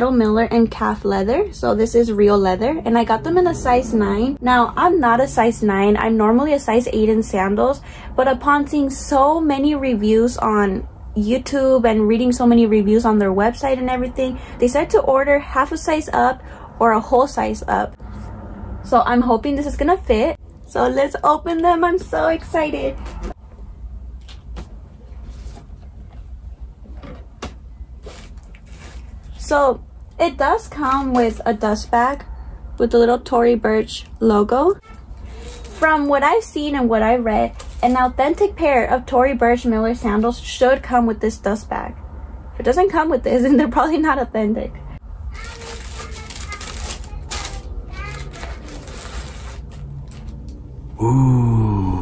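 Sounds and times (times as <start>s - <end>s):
faint voice: 51.0s - 52.0s.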